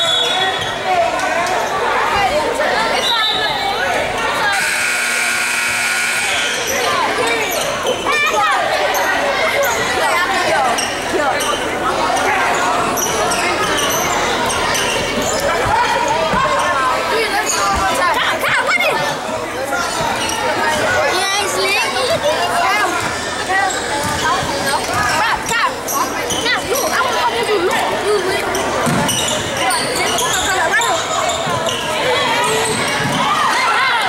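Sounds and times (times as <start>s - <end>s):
voices of players and spectators: 0.0s - 34.0s.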